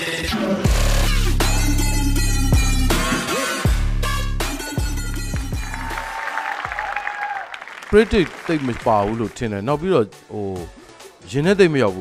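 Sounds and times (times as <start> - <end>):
audience applauding: 4.9 - 9.5.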